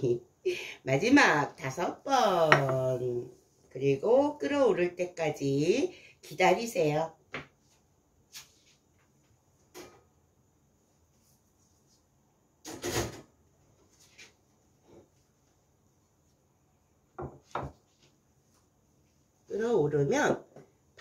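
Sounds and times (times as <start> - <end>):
plate knocking on wooden board: 2.5 - 2.8.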